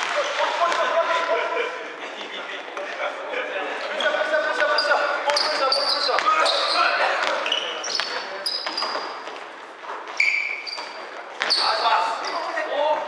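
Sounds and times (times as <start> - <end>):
sneaker squeaks: 3.9 - 12.7.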